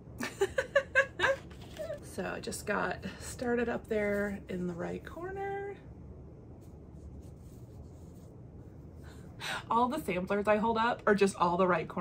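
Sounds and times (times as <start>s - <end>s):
low room hum: 0.0s - 12.0s
soft scratchy touches: 3.4s - 5.7s, 6.3s - 9.2s
fabric rustling: 6.5s - 9.2s.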